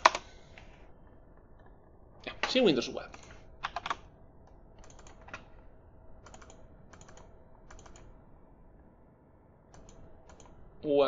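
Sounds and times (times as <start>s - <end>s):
keyboard typing clicks: 0.0s - 0.3s, 3.1s - 4.1s, 4.8s - 5.5s, 6.2s - 8.2s, 9.7s - 10.6s.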